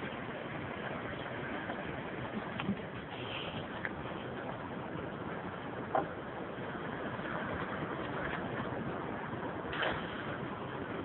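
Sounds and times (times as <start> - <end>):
surf: 0.0 - 11.0
wind: 0.0 - 11.0.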